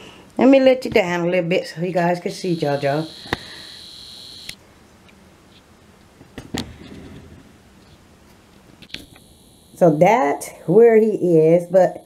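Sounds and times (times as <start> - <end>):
camcorder zoom motor whining: 2.5 - 4.6, 8.9 - 9.9.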